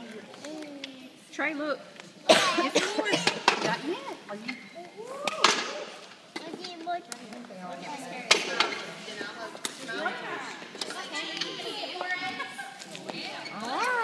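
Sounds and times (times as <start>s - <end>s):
children chattering and calling out: 2.2s - 14.0s.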